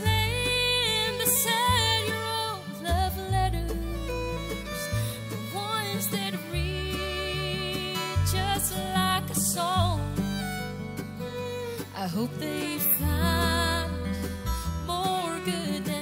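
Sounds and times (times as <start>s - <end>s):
woman singing: 0.0s - 10.7s, 11.8s - 16.0s
acoustic guitar: 0.0s - 16.0s
low bass notes: 0.0s - 16.0s.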